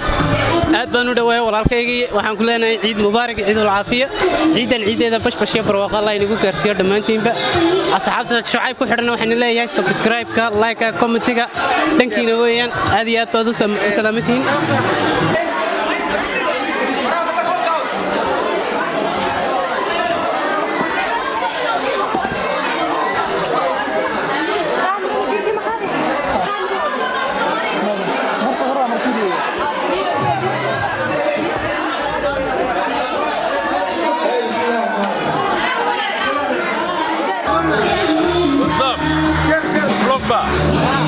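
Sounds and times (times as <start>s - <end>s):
crowd chatter in a hall: 0.0s - 41.0s.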